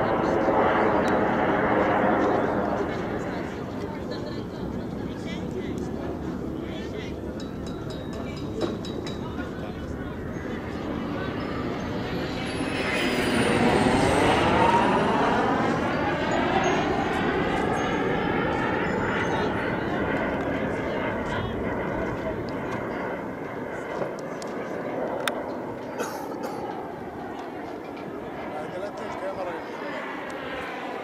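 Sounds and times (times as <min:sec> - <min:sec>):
model jet flying past: 0:00.0 - 0:07.2, 0:09.2 - 0:26.0, 0:26.6 - 0:31.0.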